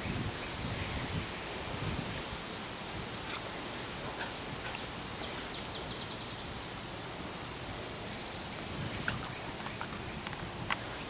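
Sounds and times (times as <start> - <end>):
wind rumble on microphone: 0.0 - 4.8, 8.4 - 11.0.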